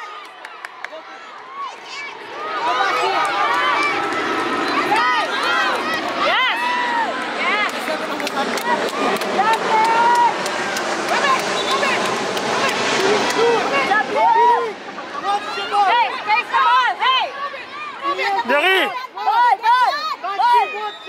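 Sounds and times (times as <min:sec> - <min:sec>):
children calling and shouting: 0:00.0 - 0:21.0
spectator chatter: 0:00.0 - 0:21.0.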